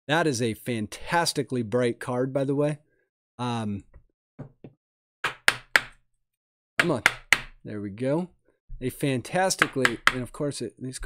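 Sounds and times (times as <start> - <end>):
plastic card holder tapping table: 4.4 - 6.0, 6.8 - 7.6, 9.6 - 10.3.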